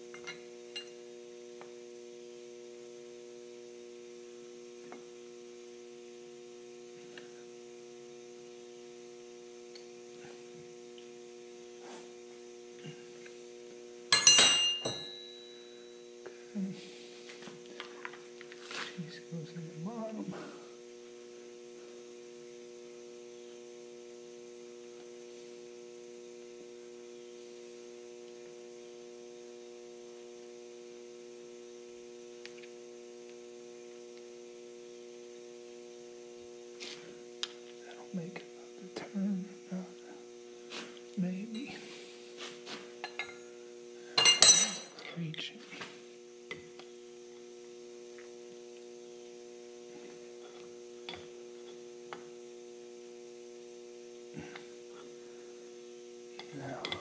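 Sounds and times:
electrical mains hum: 0.0s - 57.0s.

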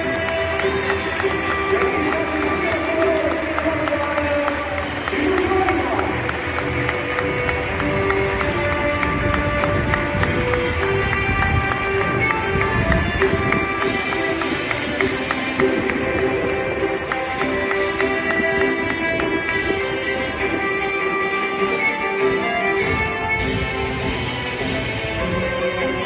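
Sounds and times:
crowd noise: 0.0s - 26.0s
music over public address: 0.0s - 26.0s.

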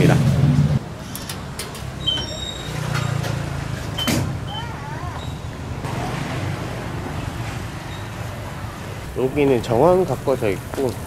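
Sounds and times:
road traffic rumble: 0.0s - 11.0s
turnstile electronic beeps: 2.0s - 3.4s.

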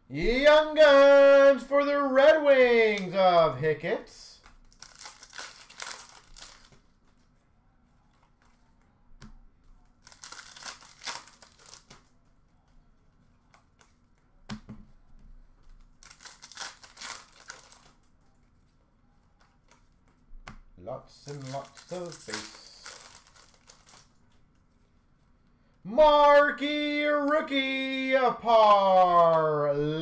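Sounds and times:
foil wrappers crinkling and tearing: 4.6s - 6.8s, 10.0s - 12.0s, 15.9s - 18.1s, 21.2s - 24.2s.

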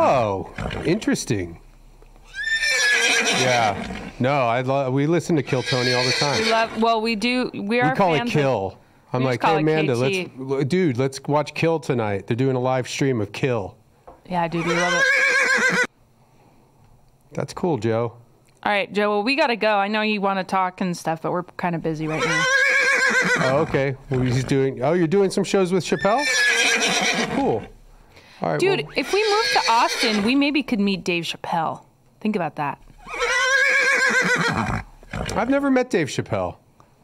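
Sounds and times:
horse whinny: 0.0s - 1.0s, 2.2s - 4.2s, 5.4s - 6.9s, 14.5s - 15.9s, 22.0s - 24.7s, 25.9s - 27.7s, 28.7s - 30.3s, 32.9s - 35.6s.

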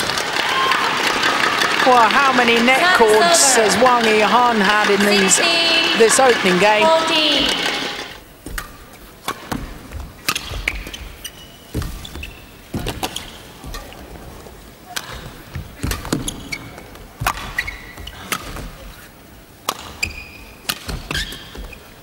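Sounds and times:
shoes squeaking on court: 8.4s - 14.4s, 15.0s - 22.0s.

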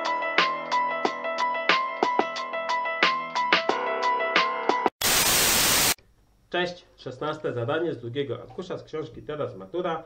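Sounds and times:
loud static hiss: 5.0s - 6.0s.

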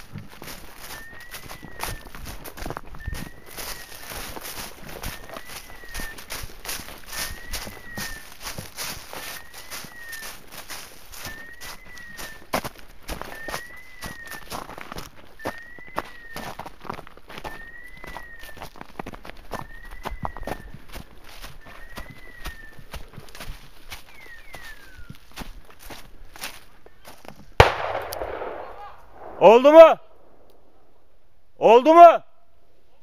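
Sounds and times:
footsteps through leaf litter: 0.0s - 15.4s, 16.0s - 27.3s
twig snap: 27.6s - 28.8s.

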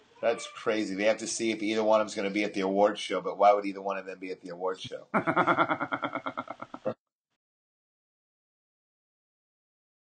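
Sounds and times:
man laughing: 5.1s - 7.0s.

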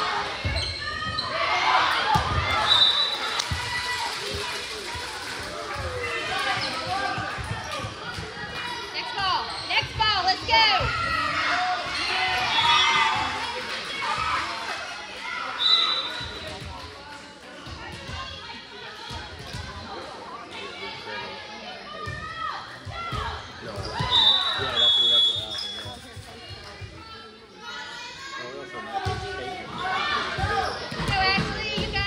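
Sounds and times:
shoe squeaks: 23.8s - 26.0s.

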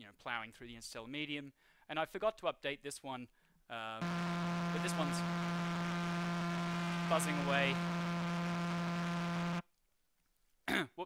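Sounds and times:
steady electronic buzz: 4.0s - 9.6s.

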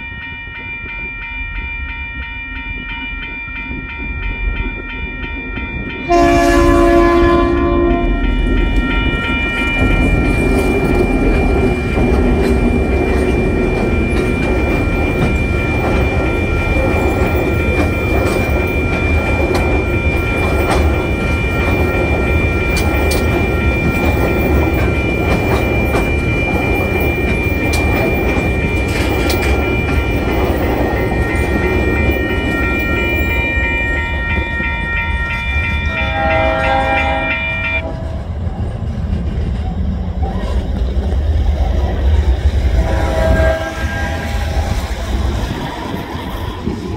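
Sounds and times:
high ringing tone: 0.0s - 38.5s, 42.1s - 46.9s
diesel locomotive horn blast: 6.1s - 8.4s, 35.9s - 38.2s, 42.7s - 44.8s.

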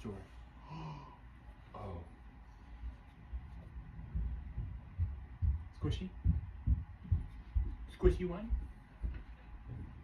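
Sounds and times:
dull low thuds: 3.2s - 10.0s.

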